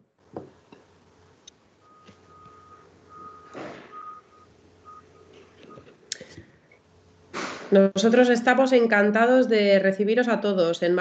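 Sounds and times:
faint electronic beeping: 0.9 - 5.9.

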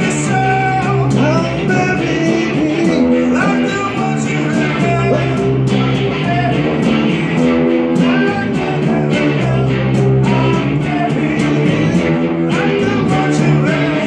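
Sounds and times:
bass guitar: 0.0 - 14.0
rock guitar strumming chords: 0.0 - 14.0.

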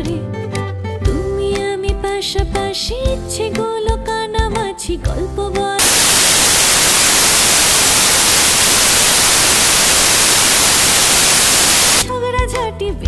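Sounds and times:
static white noise hiss: 5.8 - 12.0.

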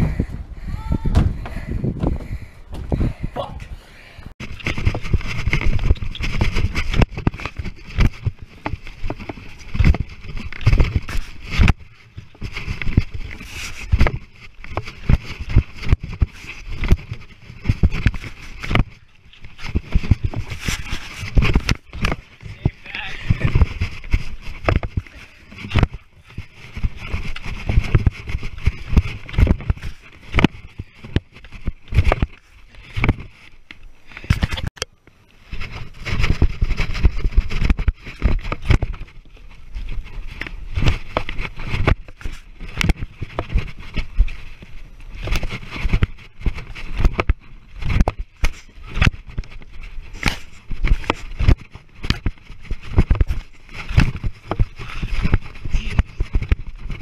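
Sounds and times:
wind rumbling on microphone: 0.0 - 34.8, 35.4 - 57.0.

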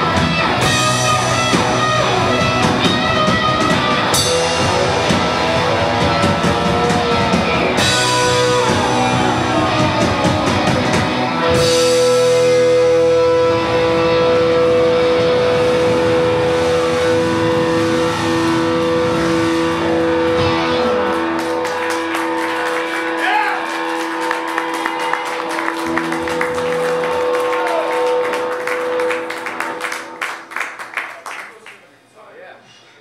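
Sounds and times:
electric guitars ringing: 0.0 - 31.0
audience clapping: 20.2 - 31.9.

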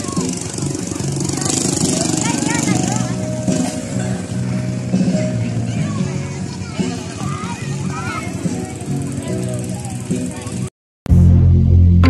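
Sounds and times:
adults and children talking: 0.0 - 10.7
motorcycle engine running: 0.0 - 12.0.

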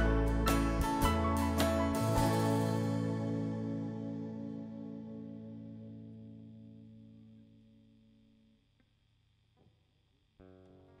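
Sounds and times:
piano chord ringing: 0.0 - 7.4
quiet piano chord: 0.0 - 7.4.

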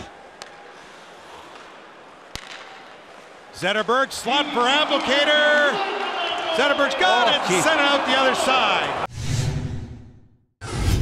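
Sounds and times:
arena crowd noise: 0.0 - 9.1
stick striking puck: 2.3 - 3.0.

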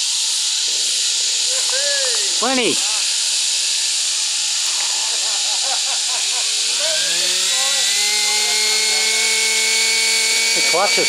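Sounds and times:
model helicopter engine hissing: 0.0 - 11.0
rotor whine: 0.0 - 11.0.

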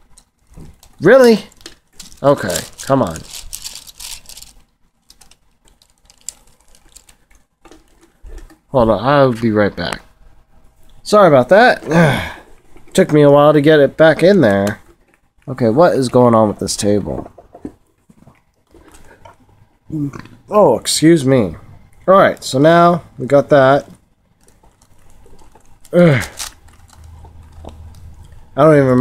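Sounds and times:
handling plastic puzzle cube: 0.0 - 8.7, 23.8 - 28.5
person burping: 11.8 - 12.5, 25.9 - 26.4.

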